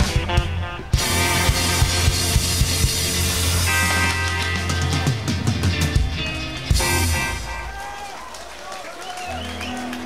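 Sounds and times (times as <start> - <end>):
bass guitar: 0.0 - 7.9
electric guitar: 0.0 - 7.9
drum kit beating: 0.0 - 8.1.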